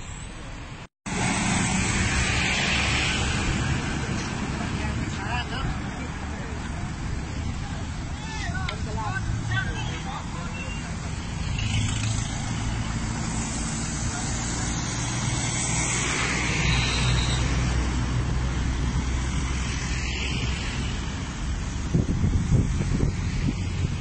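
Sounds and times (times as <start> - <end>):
road traffic engine hum: 0.0 - 24.0.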